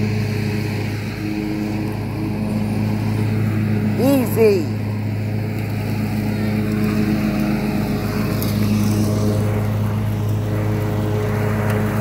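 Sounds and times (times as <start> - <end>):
riding mower engine running: 0.0 - 12.0.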